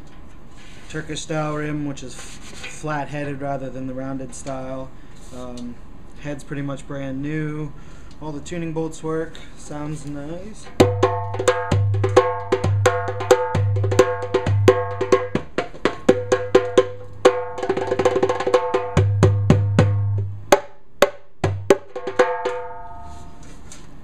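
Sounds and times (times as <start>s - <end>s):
metal goblet drum played with fingers: 10.7s - 23.3s.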